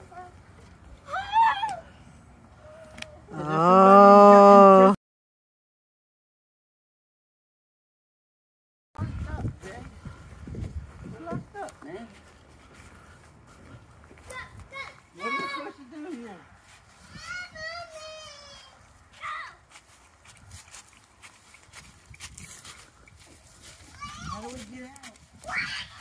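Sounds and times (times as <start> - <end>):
children shouting: 1.1 - 2.0, 25.4 - 26.0
children's voices: 13.5 - 15.9, 17.0 - 19.8, 23.6 - 24.7.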